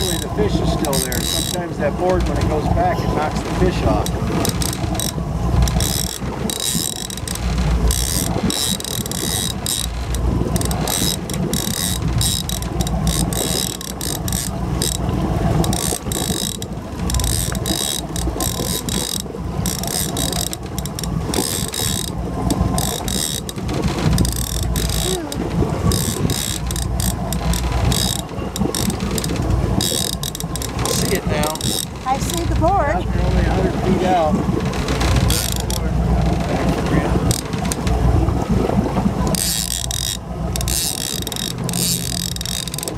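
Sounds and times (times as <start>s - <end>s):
fishing reel clicker ratcheting: 0.0s - 1.6s, 4.0s - 32.6s, 39.3s - 42.9s
low rumble: 23.5s - 39.4s.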